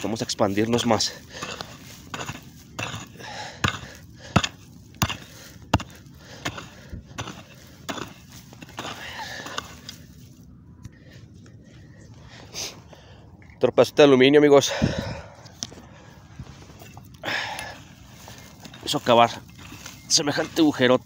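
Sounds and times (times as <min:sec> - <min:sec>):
mattock striking stony earth: 0:00.0 - 0:10.2
soil and pebbles scattering: 0:00.0 - 0:10.5, 0:16.8 - 0:21.0.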